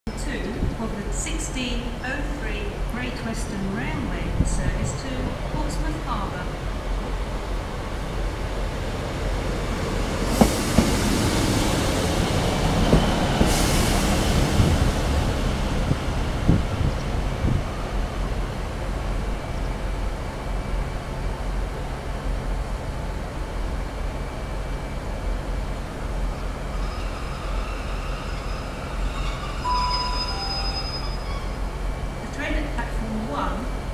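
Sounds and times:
train diesel engine droning: 0:00.1 - 0:33.9
train wheels clicking: 0:10.2 - 0:17.6
thin high tones: 0:26.8 - 0:31.6.

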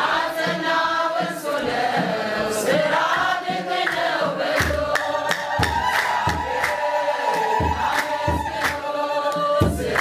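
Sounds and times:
mixed choir singing a hymn: 0:00.0 - 0:10.0
handclap: 0:03.7 - 0:10.0.

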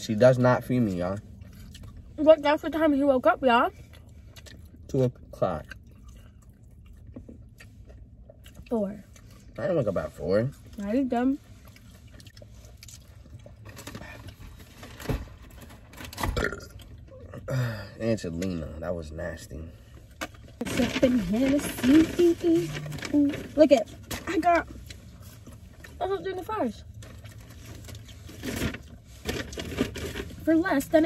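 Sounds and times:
person burping: 0:16.3 - 0:17.8.

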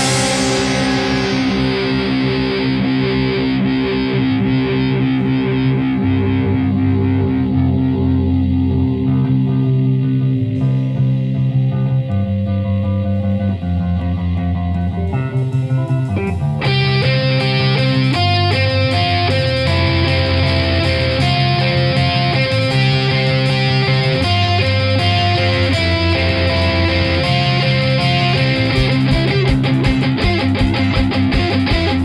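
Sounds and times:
distorted electric guitar chords: 0:00.0 - 0:32.0.

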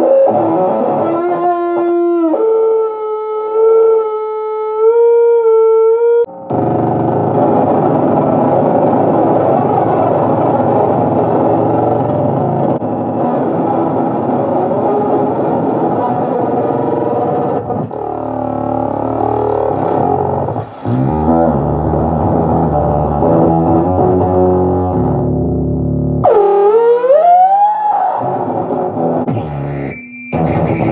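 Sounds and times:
chaotic electric guitar fuzz: 0:00.0 - 0:03.9, 0:06.3 - 0:30.9
warbling tone sweeping in pitch: 0:17.8 - 0:23.4.

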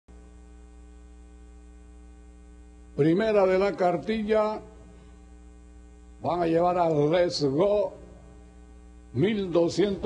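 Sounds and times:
electrical mains hum: 0:00.1 - 0:10.0.

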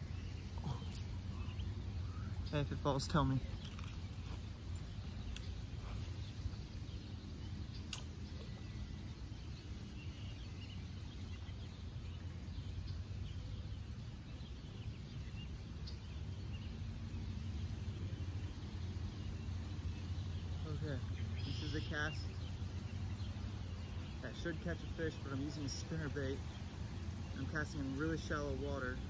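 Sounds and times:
faint bird chirps: 0:00.0 - 0:29.0
steady low rumble: 0:00.0 - 0:29.0
sharp click: 0:07.9 - 0:08.2.

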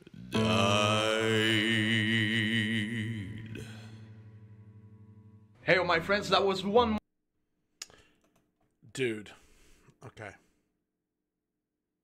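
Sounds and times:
man singing with vibrato: 0:00.1 - 0:04.2.

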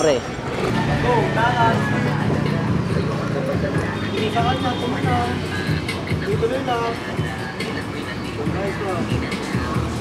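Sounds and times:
voices talking and calling: 0:00.0 - 0:10.0.

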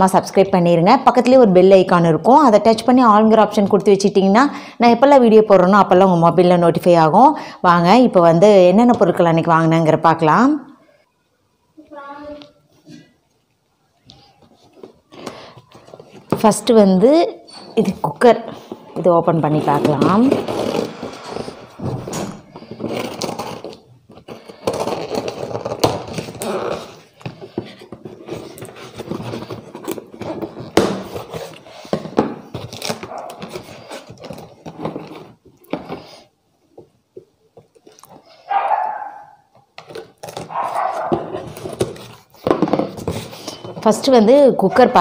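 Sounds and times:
scraping and rustling: 0:17.7 - 0:36.3, 0:39.8 - 0:44.2.

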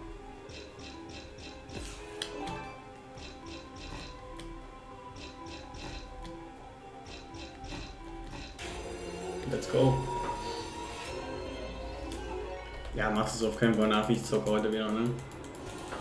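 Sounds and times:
slot game background music: 0:00.0 - 0:16.0.

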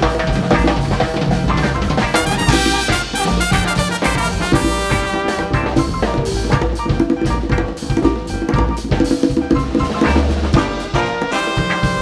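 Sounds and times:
busy drum kit: 0:00.0 - 0:12.0
live jazz band playing: 0:02.0 - 0:09.2, 0:09.8 - 0:12.0.

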